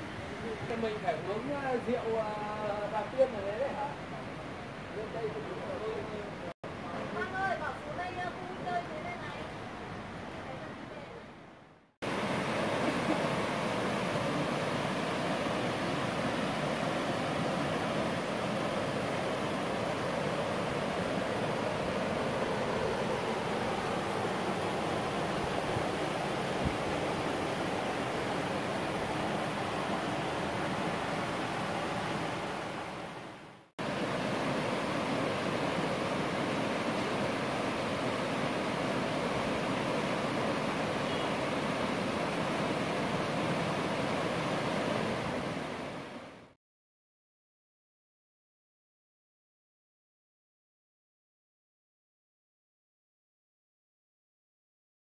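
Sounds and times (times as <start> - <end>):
stream water pouring over cascades: 12.0 - 33.1, 33.8 - 46.1.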